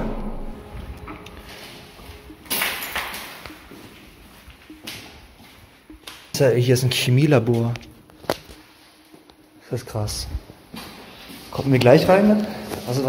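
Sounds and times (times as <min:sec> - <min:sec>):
footsteps: 0:00.0 - 0:06.6.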